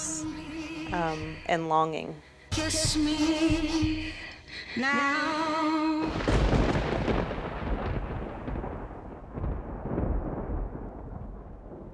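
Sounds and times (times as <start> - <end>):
deep thunder-like rumble: 6.0 - 11.9.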